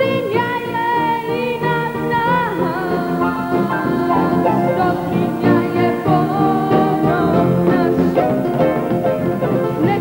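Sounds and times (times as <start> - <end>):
girl singing into a microphone: 0.0 - 8.1
keyboard accompaniment: 0.0 - 10.0.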